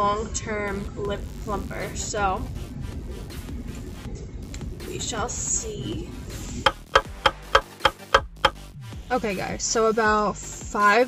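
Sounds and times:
clock ticking: 6.7 - 8.6.

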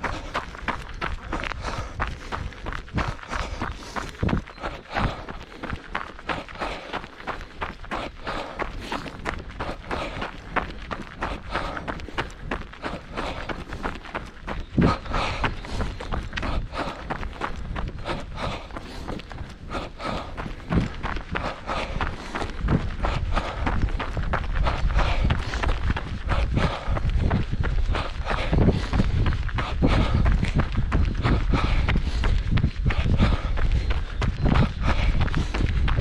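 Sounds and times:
running footsteps on gravel: 0.0 - 36.0.

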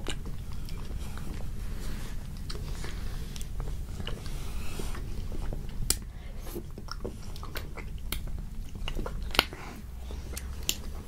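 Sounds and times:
close-miked chewing of ice cream bars: 0.0 - 11.0.

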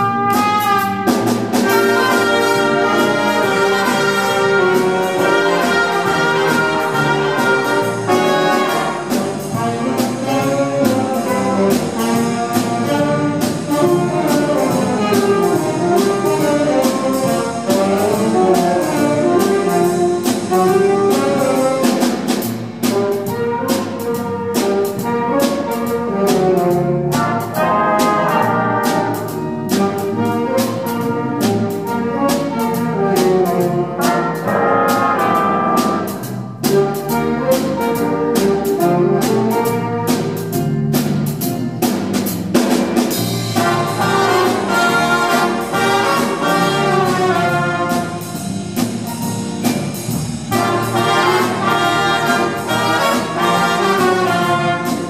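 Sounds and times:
saxophones: 0.0 - 21.8, 43.5 - 48.7, 50.0 - 55.0
trumpets: 0.0 - 22.1, 22.9 - 40.4, 43.4 - 48.9, 50.4 - 55.0
drums beat: 0.0 - 55.0
jazz big band playing blues: 0.0 - 55.0.

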